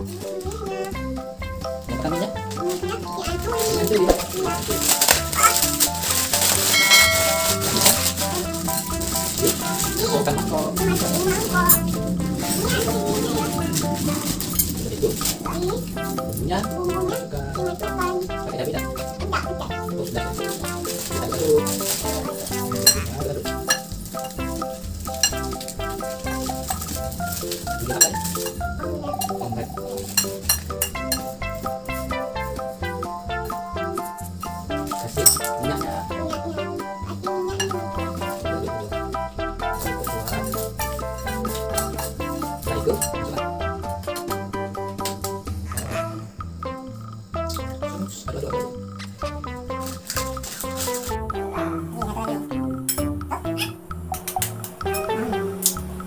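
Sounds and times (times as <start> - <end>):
background music: 0.0 - 56.0
plastic packet crackling: 2.4 - 28.6, 49.8 - 51.2
dry noodles crumbling into bowl: 3.5 - 15.4, 20.0 - 28.6.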